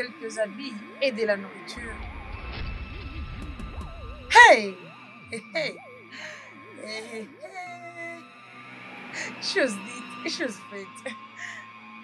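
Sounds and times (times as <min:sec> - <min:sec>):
film music: 0:00.0 - 0:12.0
deep low rumble: 0:01.8 - 0:04.4.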